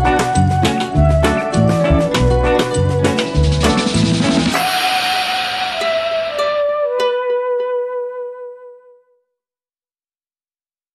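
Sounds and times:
drum-kit beat with bass: 0.0 - 6.6
sustained wash and held note: 3.4 - 7.4.

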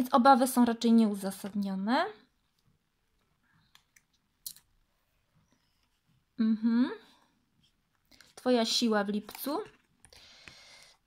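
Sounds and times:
person speaking: 8.2 - 9.9.

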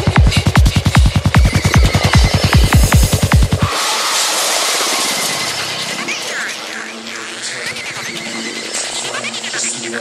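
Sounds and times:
held synth notes: 1.1 - 6.4
rising and falling synth glides: 1.4 - 6.3.

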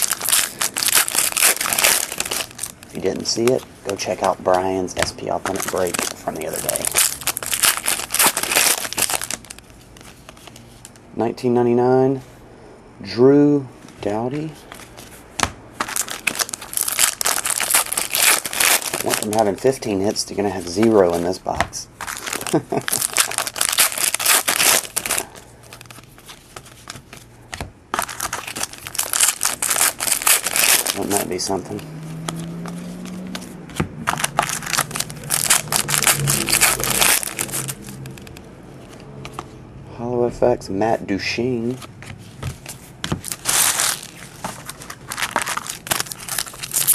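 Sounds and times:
wrapper tearing and crinkling: 0.0 - 4.6, 5.2 - 10.6, 15.8 - 19.9, 22.0 - 27.0, 28.0 - 38.4, 43.2 - 46.9
trading cards shuffled in hands: 0.0 - 11.0, 15.8 - 31.6, 32.3 - 39.6, 41.6 - 46.9.

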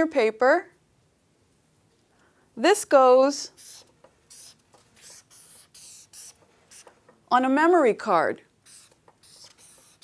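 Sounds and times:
marker scratching on paper: 3.5 - 7.0, 8.6 - 10.0.

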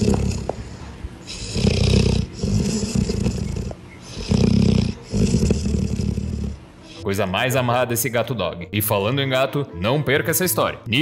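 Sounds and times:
dog purring: 0.0 - 0.6, 1.2 - 7.0.

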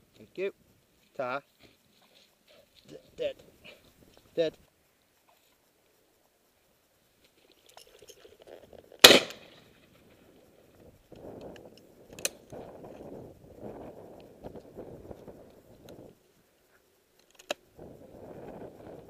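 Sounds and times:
shotgun shot: 9.0 - 9.5.

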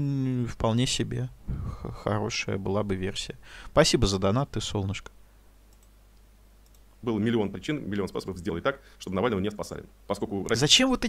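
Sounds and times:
computer mouse clicks: 5.7 - 6.9.

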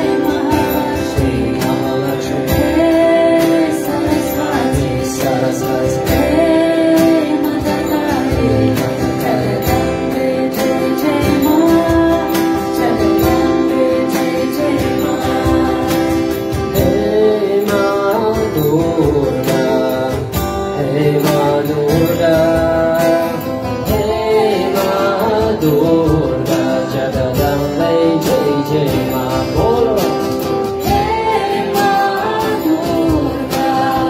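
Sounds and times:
man and woman singing a chant: 0.0 - 34.0
strummed acoustic guitars: 0.0 - 34.0.

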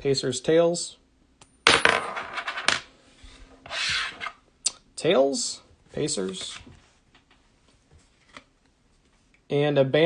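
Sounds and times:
coin bouncing on tabletop: 1.6 - 2.8
short scrape: 3.2 - 4.4.

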